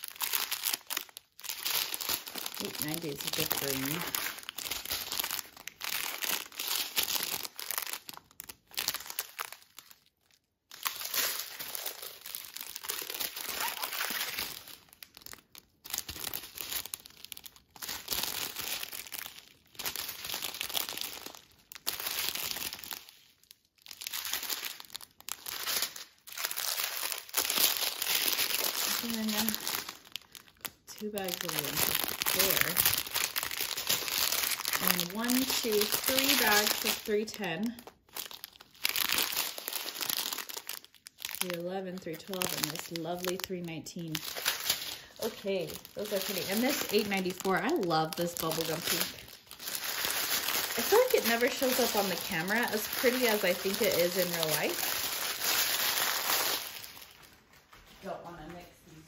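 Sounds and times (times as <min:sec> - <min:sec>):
plastic bags crinkling: 0:00.0 - 0:59.0.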